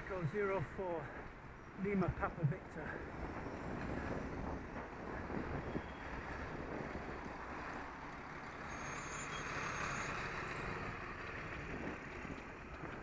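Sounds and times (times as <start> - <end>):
road and wind noise: 0.0 - 13.0
bus engine running: 2.4 - 13.0.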